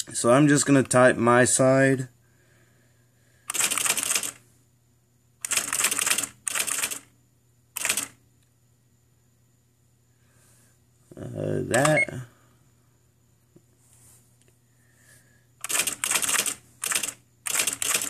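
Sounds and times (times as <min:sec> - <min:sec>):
electronic typewriter printing: 0:03.5 - 0:04.4, 0:05.4 - 0:07.1, 0:07.8 - 0:08.2, 0:15.6 - 0:18.0.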